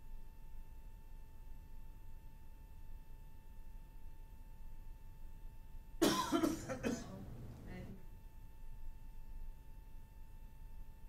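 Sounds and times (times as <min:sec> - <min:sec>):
person coughing: 0:06.0 - 0:07.3
throat-clearing: 0:06.0 - 0:07.4.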